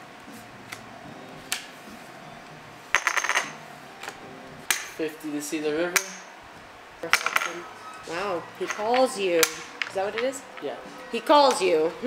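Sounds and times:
poker chips clicking: 8.6s - 10.7s.

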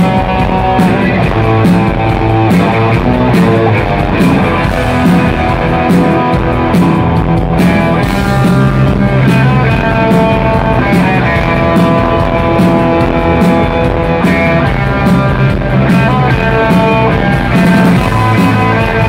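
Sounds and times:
live surf rock band: 0.0s - 19.0s.

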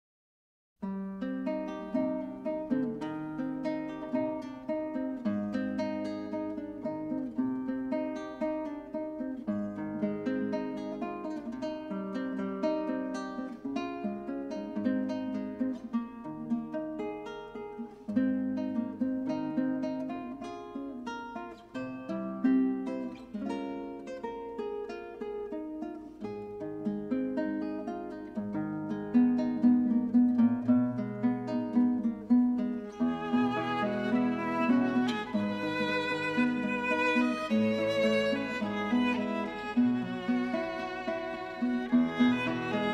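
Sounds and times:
classical guitar playing: 0.8s - 42.9s
violin sustained notes: 33.0s - 42.9s.

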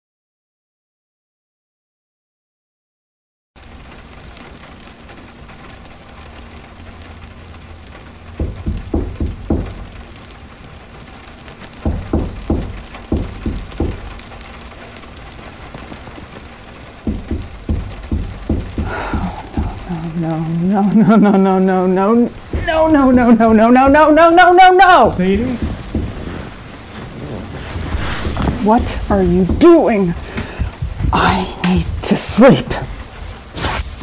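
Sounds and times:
background hiss: 3.6s - 34.0s
pounding on a door: 8.4s - 10.0s, 11.8s - 14.3s, 17.0s - 19.9s, 22.5s - 26.6s.

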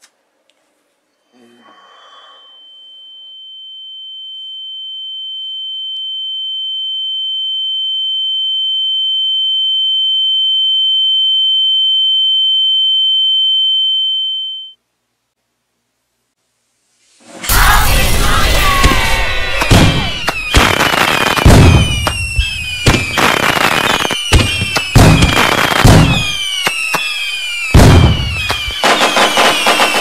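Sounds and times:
high-pitched ringing tone: 1.1s - 14.8s.

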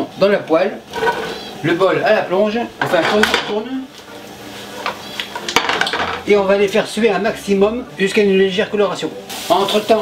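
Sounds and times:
mushrooms sizzling in frying pan: 0.0s - 7.5s, 8.1s - 10.0s
light scrapes in pan: 0.9s - 1.6s
pan knocking on burner grate: 5.4s - 6.3s.

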